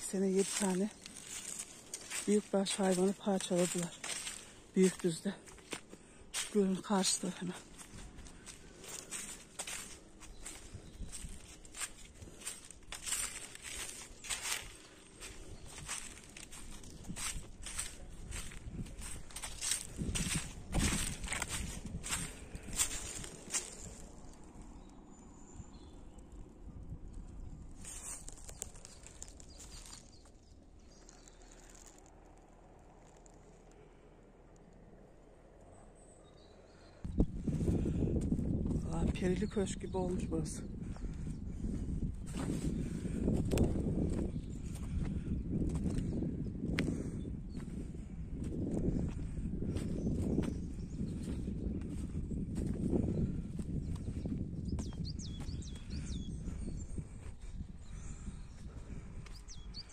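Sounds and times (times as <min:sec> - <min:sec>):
person speaking: 0:00.0 - 0:01.0, 0:02.1 - 0:05.5, 0:06.4 - 0:07.7, 0:38.8 - 0:40.7
footsteps on dry leaves: 0:00.0 - 0:24.6, 0:27.8 - 0:30.4, 0:31.0 - 0:33.3, 0:41.0 - 0:46.1, 0:46.8 - 0:55.9.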